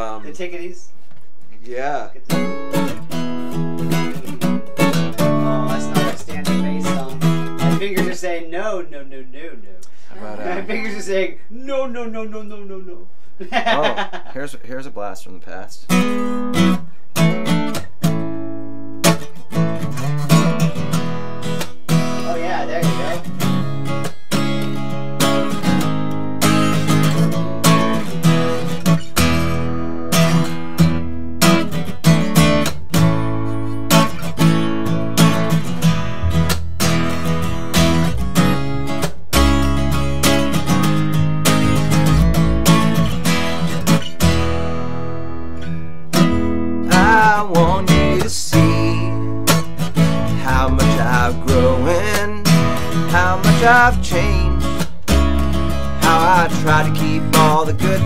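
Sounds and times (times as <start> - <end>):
upright bass line: 1.8 - 8.2, 19.4 - 58.0
acoustic guitar strumming: 2.2 - 8.5, 15.9 - 58.0.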